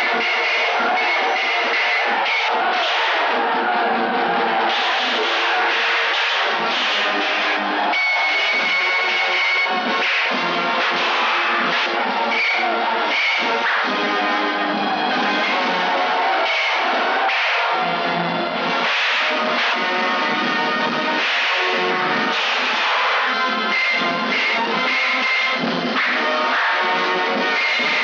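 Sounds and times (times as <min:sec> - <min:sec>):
action film score with sharp hits: 0:00.0 - 0:03.4, 0:04.3 - 0:28.0.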